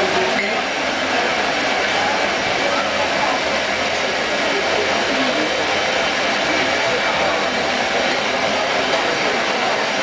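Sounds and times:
indistinct voices murmuring: 0:00.0 - 0:10.0
loud background noise: 0:00.0 - 0:10.0.

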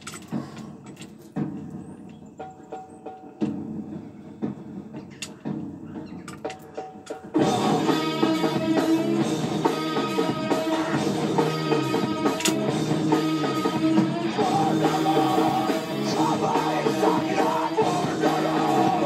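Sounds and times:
metal chain clinking and rattling: 0:00.0 - 0:01.4
guitar-led music: 0:07.4 - 0:19.0.

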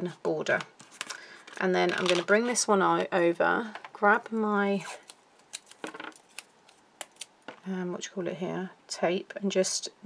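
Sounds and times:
tape ticking and crinkling: 0:04.2 - 0:07.6.

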